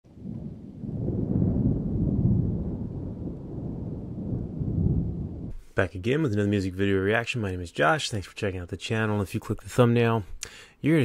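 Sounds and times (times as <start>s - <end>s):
low rumbling noise: 0.0s - 5.6s.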